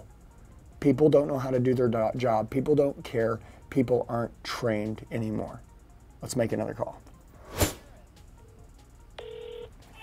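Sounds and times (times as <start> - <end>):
phone tone: 9.2 - 10.0.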